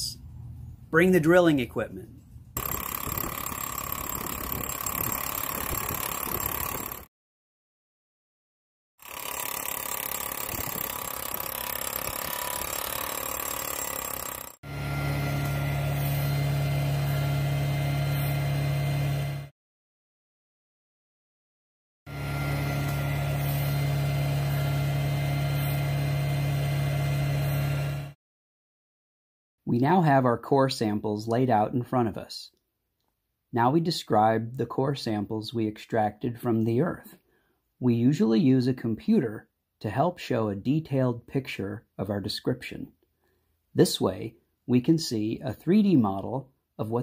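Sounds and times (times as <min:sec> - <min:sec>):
drill rig engine running: 0:02.6 - 0:07.1, 0:09.0 - 0:19.5, 0:22.1 - 0:28.2.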